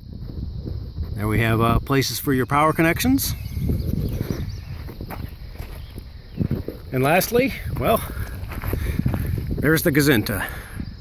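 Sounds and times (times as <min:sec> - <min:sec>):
highway traffic rumble: 0:00.0 - 0:11.0
footsteps on gravel: 0:03.8 - 0:10.7.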